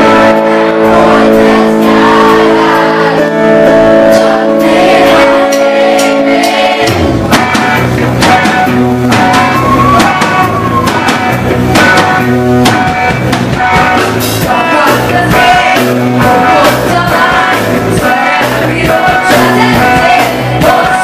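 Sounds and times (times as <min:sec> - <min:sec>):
drum kit: 0:00.0 - 0:21.0
electric guitar: 0:00.0 - 0:21.0.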